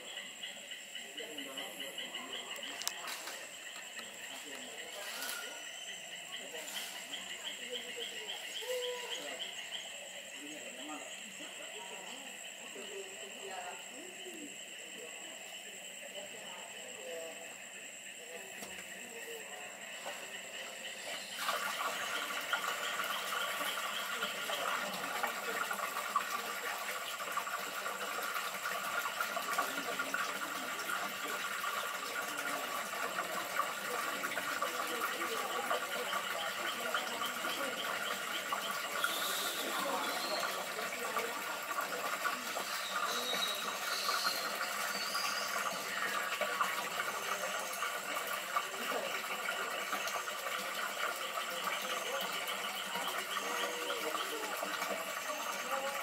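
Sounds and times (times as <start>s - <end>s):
high insect chirps: 0.0s - 56.0s
insects buzzing: 0.0s - 56.0s.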